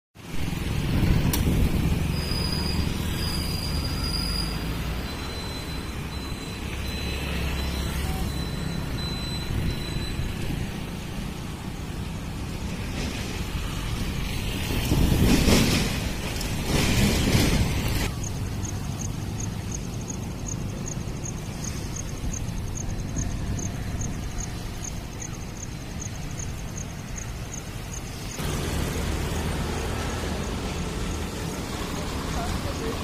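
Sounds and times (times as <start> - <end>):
low rumble of traffic: 0.2 - 33.0
vehicles passing: 0.2 - 33.0.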